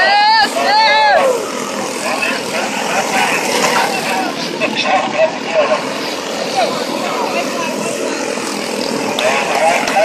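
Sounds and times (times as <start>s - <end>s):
faint spectators' voices: 0.0s - 10.0s
small race car engines buzzing: 0.0s - 10.0s.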